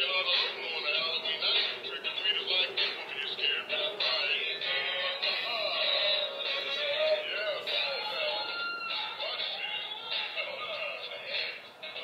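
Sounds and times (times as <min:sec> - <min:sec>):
song through tinny speaker: 0:00.0 - 0:12.0.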